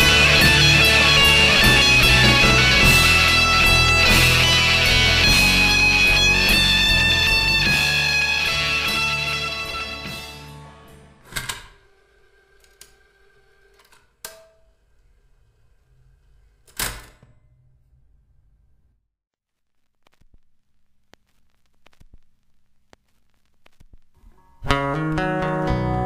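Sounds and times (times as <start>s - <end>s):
post-rock electric guitars: 0.0s - 11.2s, 24.6s - 26.0s.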